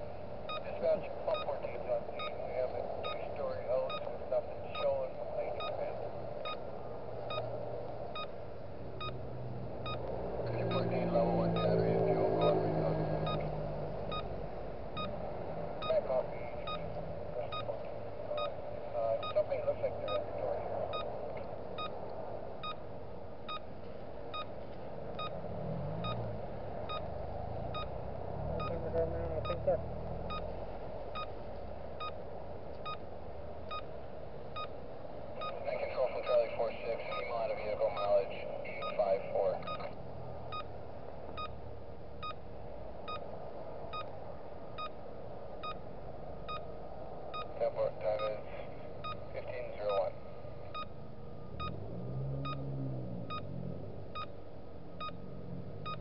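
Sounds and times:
low steady hum: 0.0s - 56.0s
faint regular ticking: 0.2s - 12.6s, 13.2s - 25.4s, 26.0s - 52.7s, 53.3s - 56.0s.

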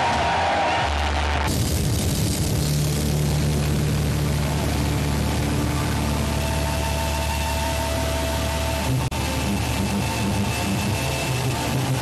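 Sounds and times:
distorted metal guitars droning: 0.0s - 12.0s.

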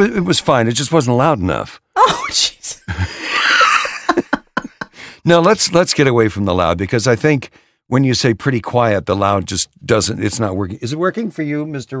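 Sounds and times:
person laughing: 2.0s - 6.0s.

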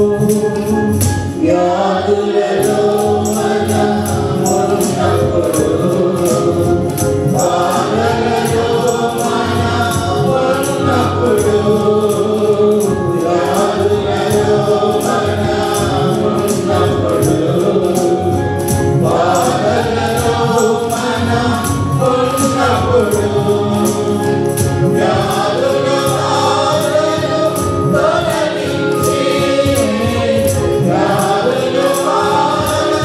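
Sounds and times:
mixed choir singing: 0.0s - 33.0s
steady percussion beat: 0.0s - 33.0s.

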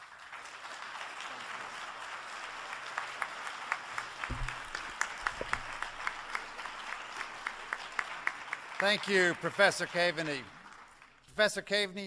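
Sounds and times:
audience applauding: 0.0s - 11.3s
low bump: 4.3s - 5.9s.

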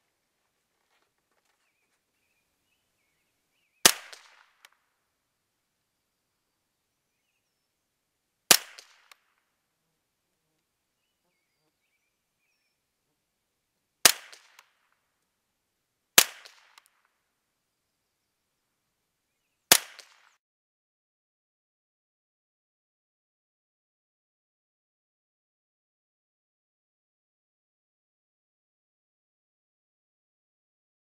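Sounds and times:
rifle shots with echo: 3.8s - 4.8s, 8.5s - 9.3s, 14.0s - 14.8s, 16.2s - 17.0s, 19.7s - 20.4s.

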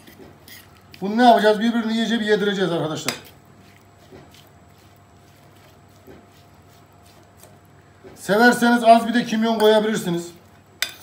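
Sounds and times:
fork clinking and scraping bowl: 0.0s - 1.0s, 10.8s - 11.0s.

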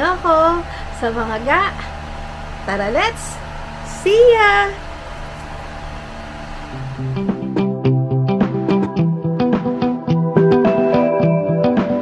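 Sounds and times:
music: 6.7s - 12.0s.

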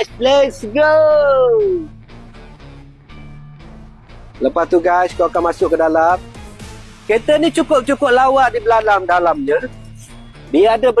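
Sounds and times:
man shouting: 0.0s - 1.9s
background music with guitar: 0.0s - 11.0s.

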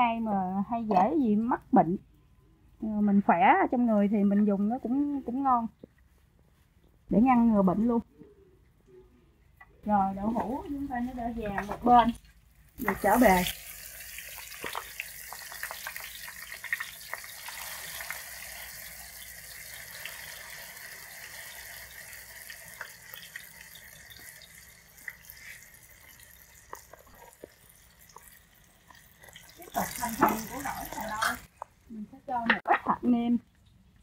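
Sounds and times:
tofu skin sizzling in oil: 10.2s - 31.5s.

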